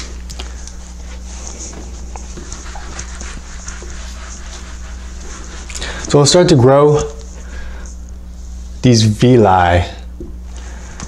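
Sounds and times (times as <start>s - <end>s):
whiteboard wiping: 0.0s - 8.9s
steady low hum: 0.0s - 11.0s.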